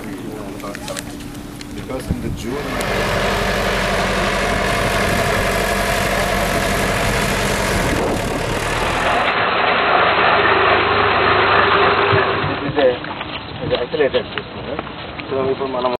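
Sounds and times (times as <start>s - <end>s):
voices: 0.0s - 9.3s
steady noisy hiss: 0.0s - 11.8s
diesel engine running: 1.9s - 12.4s.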